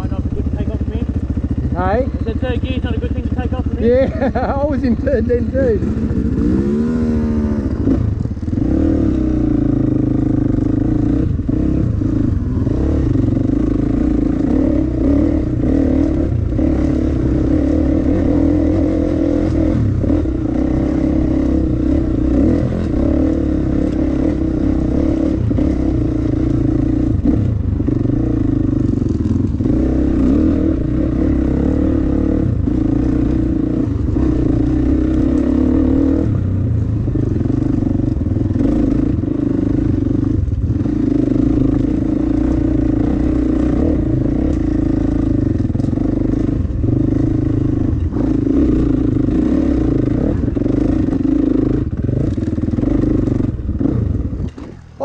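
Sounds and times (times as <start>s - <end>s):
dirt bike engine running: 0.0s - 55.0s.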